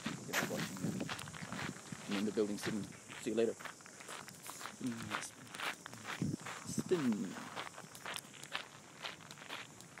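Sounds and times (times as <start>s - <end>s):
footsteps walking: 0.0s - 10.0s.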